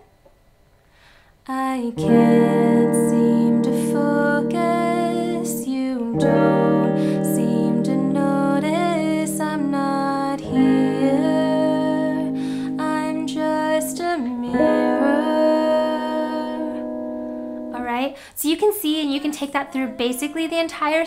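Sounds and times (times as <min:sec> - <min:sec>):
woman singing softly: 0:01.5 - 0:17.0, 0:17.7 - 0:21.0
clean electric guitar strums: 0:02.0 - 0:17.8.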